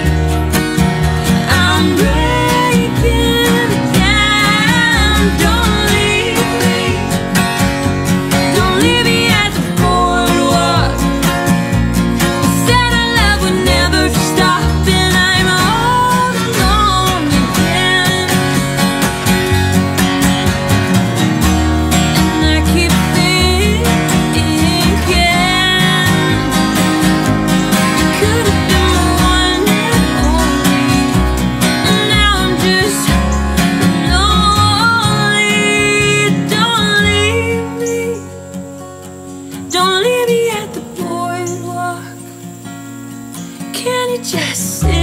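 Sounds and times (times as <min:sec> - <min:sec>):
plucked upright bass: 0:00.0 - 0:37.9, 0:44.8 - 0:45.0
strummed acoustic guitars: 0:00.0 - 0:45.0
woman singing: 0:01.3 - 0:07.7, 0:08.3 - 0:18.8, 0:21.9 - 0:26.9, 0:27.7 - 0:38.5, 0:39.6 - 0:42.6, 0:43.6 - 0:45.0.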